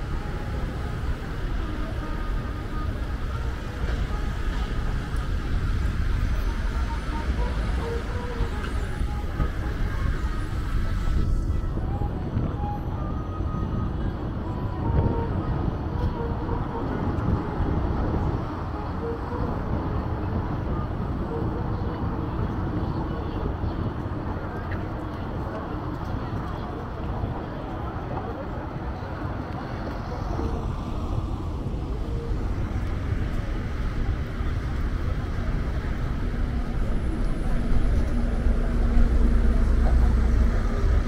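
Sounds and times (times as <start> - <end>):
pedestrians' voices: 0.0 - 41.0
road traffic rumble: 0.0 - 41.0
vehicles passing close by: 0.0 - 41.0.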